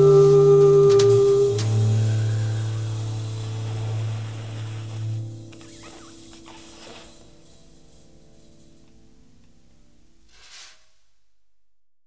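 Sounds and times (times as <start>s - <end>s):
low sustained bass note: 0.0s - 5.3s
held high jazz note: 0.0s - 8.8s.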